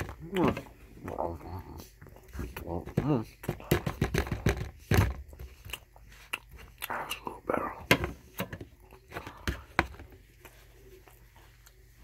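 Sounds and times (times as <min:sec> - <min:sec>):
chewing with lip smacks: 0:05.2 - 0:07.4.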